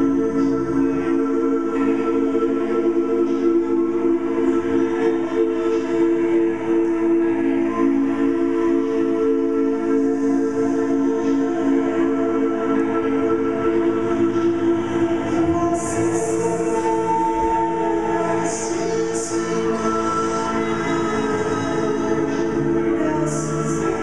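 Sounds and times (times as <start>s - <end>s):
layered voices holding a chord: 0.0s - 24.0s.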